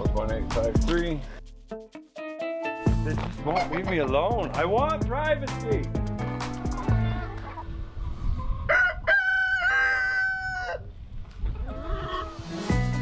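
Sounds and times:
rooster crowing: 8.6s - 10.9s.

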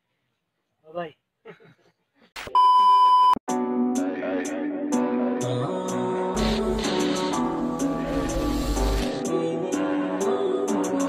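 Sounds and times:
static hiss: 6.4s - 9.3s.

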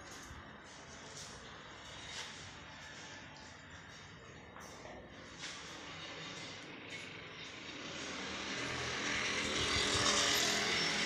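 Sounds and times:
passing vehicle engine: 5.2s - 11.0s.

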